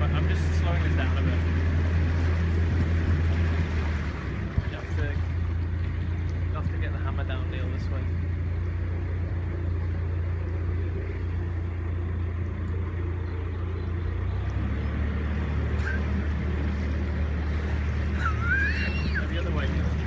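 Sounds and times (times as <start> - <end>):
diesel boat engine running: 0.0 - 20.0.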